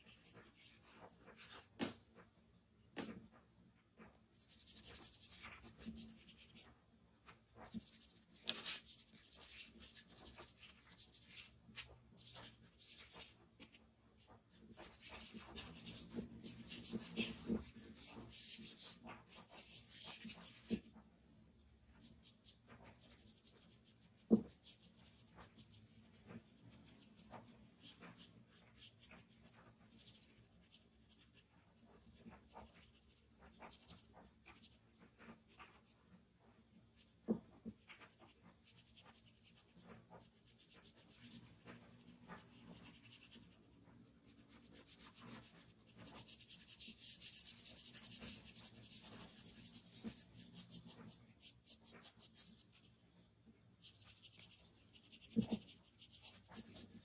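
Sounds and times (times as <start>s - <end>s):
charcoal scratching on paper: 0.0s - 1.8s, 4.1s - 20.9s, 22.0s - 36.0s, 36.8s - 53.1s, 53.8s - 57.0s
charcoal rubbing on paper: 4.3s - 6.7s, 7.6s - 20.9s, 22.0s - 36.0s, 37.0s - 53.0s, 53.8s - 57.0s.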